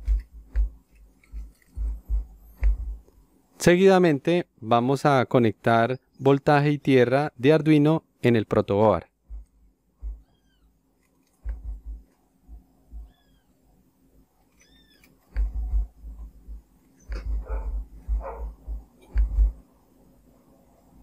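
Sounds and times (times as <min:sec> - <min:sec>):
low thuds and knocks: 0:00.0 - 0:00.8, 0:01.4 - 0:03.1, 0:11.4 - 0:13.1, 0:15.3 - 0:19.6.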